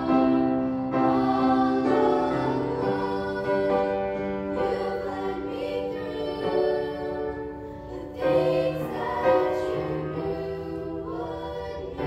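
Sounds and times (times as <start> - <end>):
grand piano playing hymn: 0.0 - 12.0
group singing: 0.0 - 12.0.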